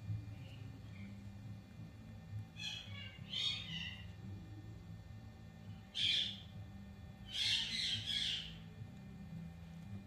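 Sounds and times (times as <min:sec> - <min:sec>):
parakeet squawking harshly: 0:02.6 - 0:04.1, 0:06.0 - 0:06.4, 0:07.3 - 0:08.6.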